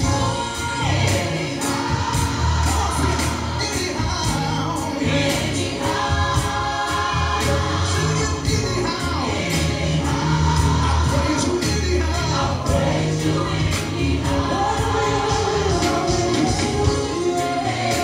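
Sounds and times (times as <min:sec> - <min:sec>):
bass line: 0:00.0 - 0:18.0
steady drum beat: 0:00.0 - 0:18.0
voices singing gospel song: 0:00.0 - 0:18.0.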